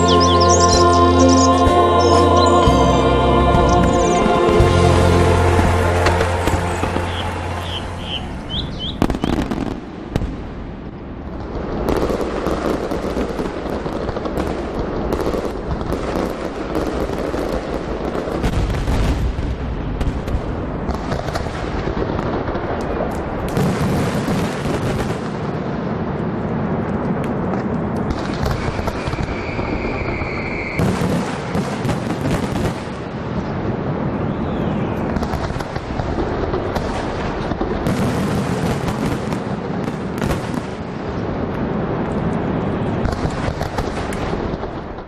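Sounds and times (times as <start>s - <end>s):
firework whistle: 0.0s - 9.7s, 28.2s - 31.6s
fireworks crackling and banging: 1.4s - 45.0s.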